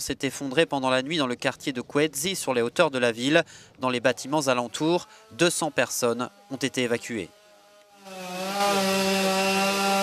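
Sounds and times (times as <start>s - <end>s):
chainsaw running: 4.1s - 10.0s.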